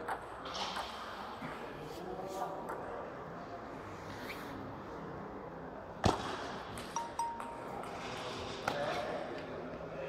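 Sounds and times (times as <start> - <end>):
large hall background noise: 0.0 - 10.0.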